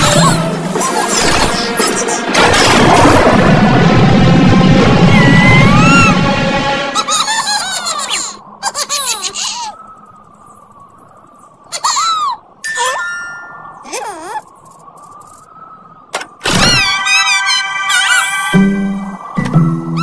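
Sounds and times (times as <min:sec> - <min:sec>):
cartoon characters giggling: 0:07.0 - 0:09.8, 0:11.7 - 0:13.0, 0:16.7 - 0:18.6
cartoon character vocal sounds: 0:13.8 - 0:14.4.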